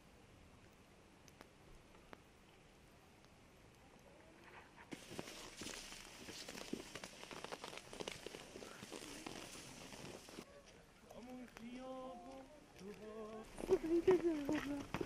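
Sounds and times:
light hiss: 0.0 - 15.0
footsteps on wet snow: 4.8 - 15.0.

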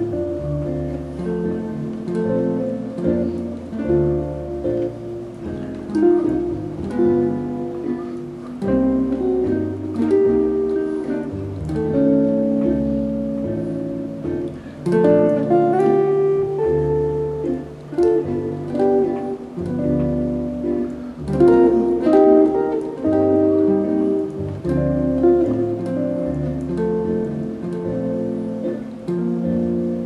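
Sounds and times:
jazz guitar chords: 0.0 - 30.0.

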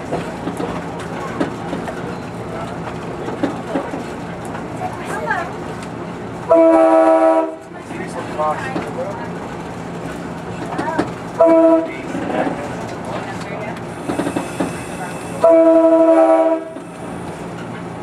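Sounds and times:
railcar rumble and wheel clatter: 0.0 - 18.0
train air horn chord: 6.5 - 7.6, 15.4 - 16.8.

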